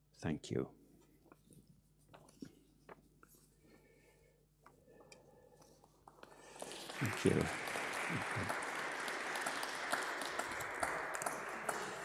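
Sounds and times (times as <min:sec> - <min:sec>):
audience applause: 0:06.3 - 0:12.0
single sharp claps: 0:06.4 - 0:12.0.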